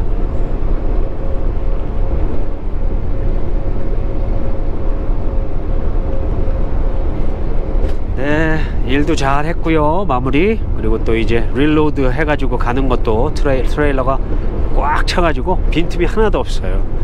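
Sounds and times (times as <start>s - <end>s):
faint steady whine: 0.0s - 17.0s
truck engine and road noise: 0.0s - 17.0s.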